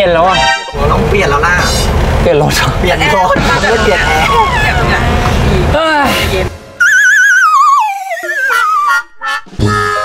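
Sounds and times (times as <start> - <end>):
van engine and road noise: 0.0 - 7.1
loud conversation: 0.0 - 7.6.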